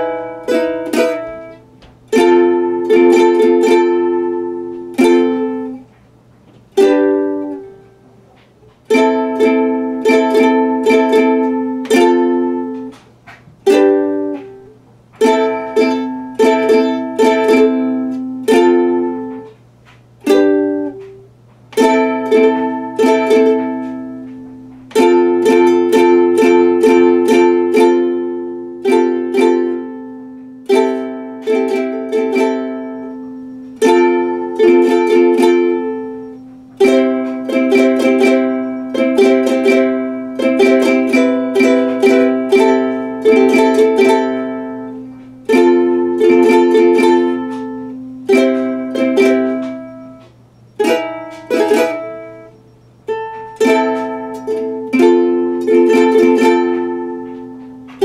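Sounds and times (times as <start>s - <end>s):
faint low hum: 0.0s - 58.0s
ukulele strumming chords: 0.0s - 58.0s.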